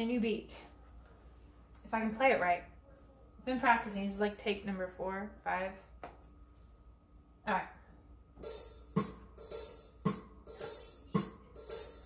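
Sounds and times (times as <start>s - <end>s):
hi-hat hits: 8.4s - 12.0s
low drum beats: 8.4s - 12.0s.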